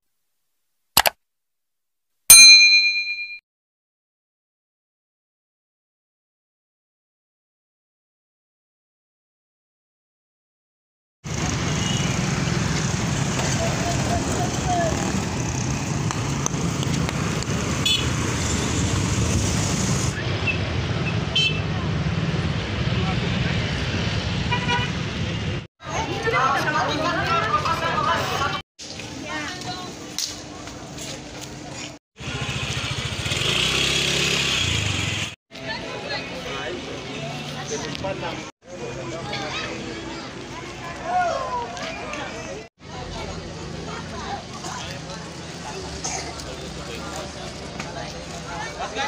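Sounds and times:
notification bell ding: 0:02.3 - 0:03.4
road traffic rumble: 0:11.2 - 0:49.0.

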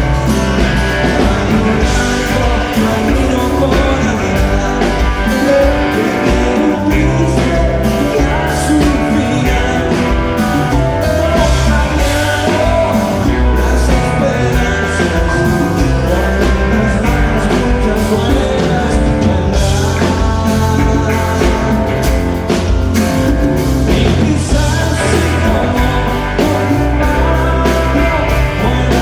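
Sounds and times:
bass guitar: 0:00.0 - 0:29.0
drum kit: 0:00.0 - 0:29.0
electric guitars: 0:00.0 - 0:29.0
man singing: 0:00.0 - 0:29.0.

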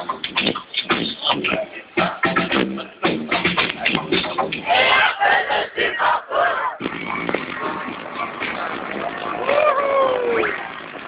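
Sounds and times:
loud shouting voices: 0:04.6 - 0:10.6.

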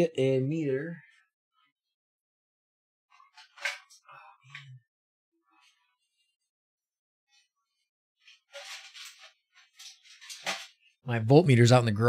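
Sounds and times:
objects rattling while rummaged: 0:08.2 - 0:10.9.

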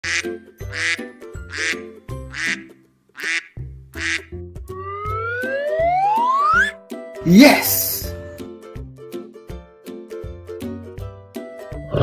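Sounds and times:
cartoon duck quacks: 0:00.0 - 0:04.3
light music: 0:00.0 - 0:12.0
rising whistle tone: 0:04.7 - 0:06.8.

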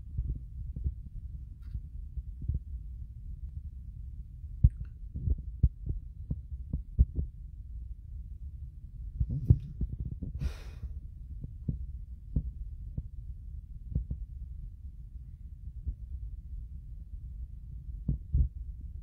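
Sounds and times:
phone microphone handling rumble: 0:09.2 - 0:10.5.

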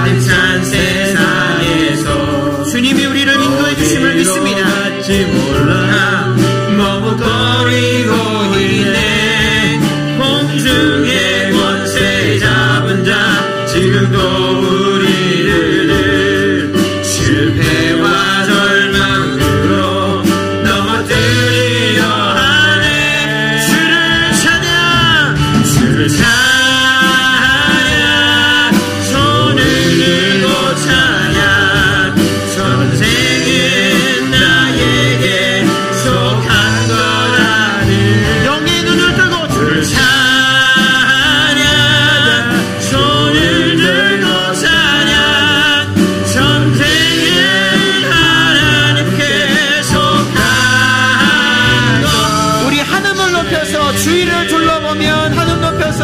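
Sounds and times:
band accompaniment: 0:00.0 - 0:56.0
worship team singing: 0:00.0 - 0:56.0.

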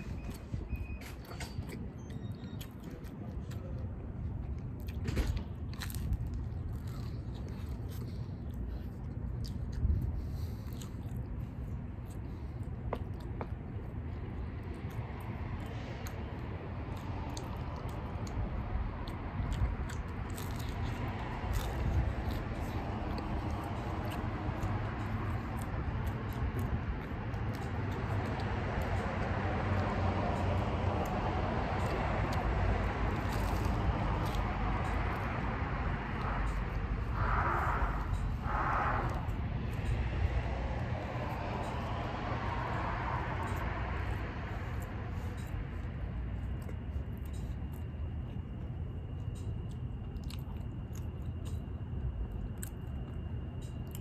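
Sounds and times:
low background rumble: 0:00.0 - 0:54.0
person chewing pizza: 0:00.0 - 0:54.0.

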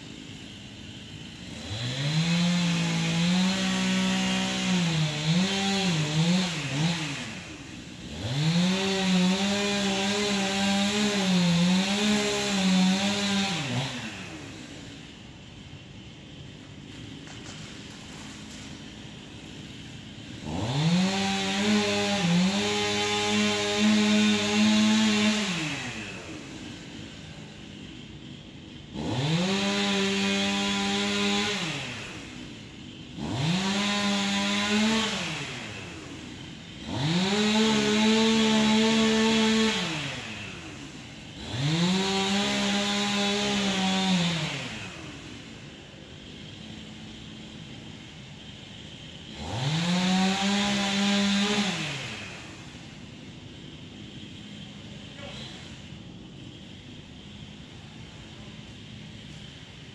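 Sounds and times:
chainsaw engine revving: 0:00.0 - 0:59.9.

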